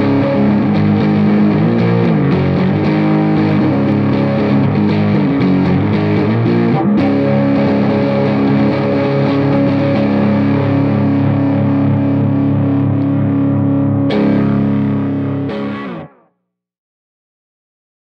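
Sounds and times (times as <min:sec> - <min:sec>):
overdriven electric guitar chords: 0:00.0 - 0:16.4.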